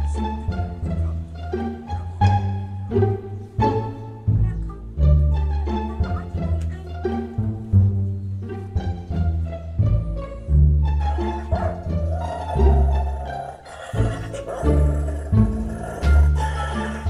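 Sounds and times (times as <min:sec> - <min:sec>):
plucked and bowed strings: 0:00.0 - 0:17.0.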